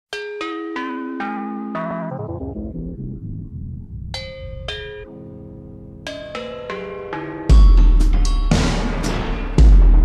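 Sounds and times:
ringing struck notes: 0.1 - 8.9.

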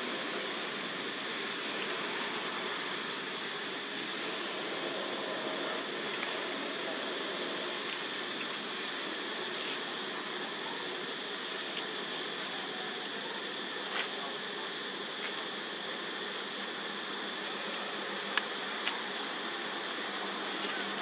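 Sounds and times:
high-pitched insect drone: 0.0 - 21.0.

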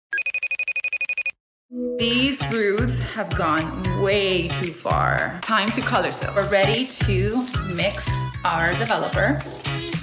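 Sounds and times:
fast trill of ringtone beeps: 0.1 - 1.4
background music: 1.7 - 10.0.

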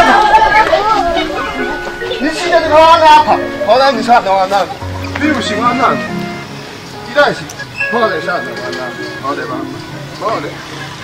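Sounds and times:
background music with held notes: 0.0 - 11.0
voices: 0.0 - 11.0.

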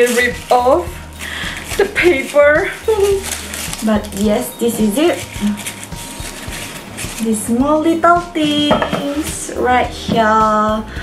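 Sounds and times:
tissue paper rustling and crinkling: 0.0 - 9.8.

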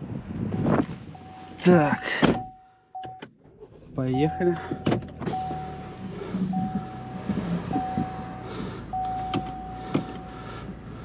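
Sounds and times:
car engine idling: 1.0 - 11.0
dashboard warning chime beeps: 2.3 - 3.3, 4.2 - 5.8, 6.5 - 8.3, 8.9 - 10.3.

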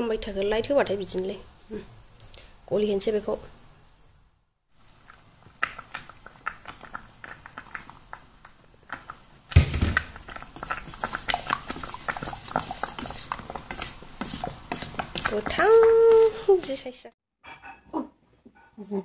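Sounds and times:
utensils clicking on steel bowl: 10.2 - 16.8.

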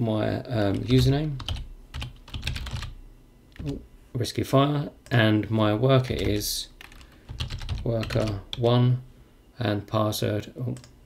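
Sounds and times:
computer keyboard typing: 0.7 - 3.0, 3.6 - 3.8, 6.0 - 8.7.

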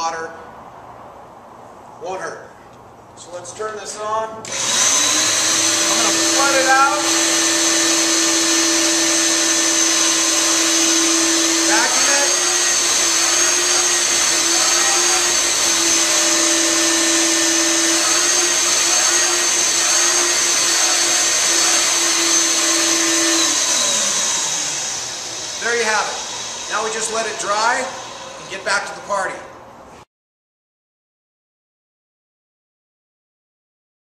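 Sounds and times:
carpet extraction machine whine: 4.5 - 25.6.

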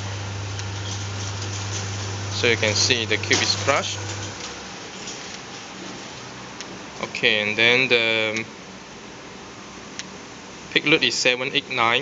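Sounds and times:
hydraulic power unit humming: 0.0 - 10.9.

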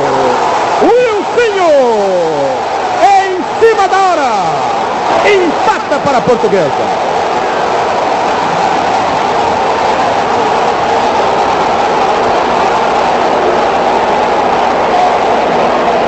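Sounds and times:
stadium crowd noise: 0.0 - 16.0.

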